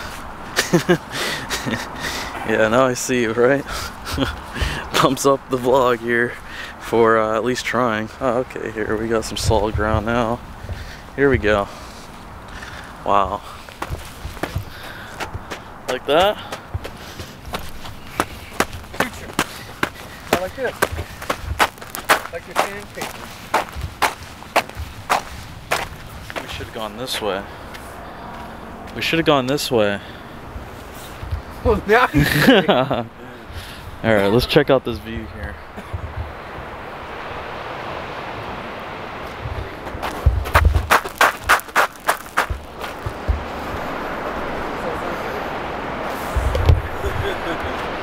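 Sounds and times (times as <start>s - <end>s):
ocean surf rushing: 0.0s - 48.0s
footsteps on gravelly trail: 10.6s - 29.6s, 39.3s - 44.3s.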